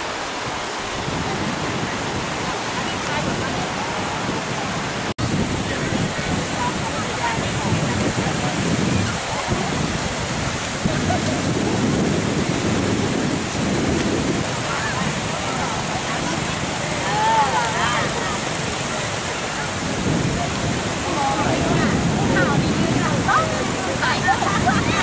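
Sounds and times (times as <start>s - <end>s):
sea surf washing onto beach: 0.0s - 25.0s
wind buffeting microphone: 0.0s - 25.0s.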